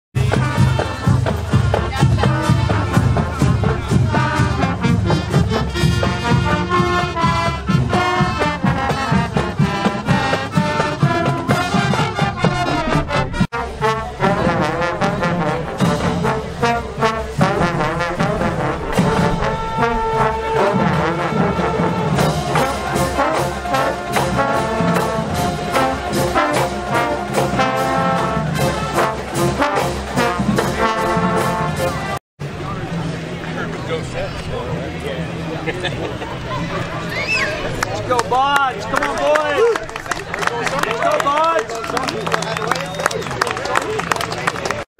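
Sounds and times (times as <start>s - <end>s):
marching band brass: 0.1s - 44.9s.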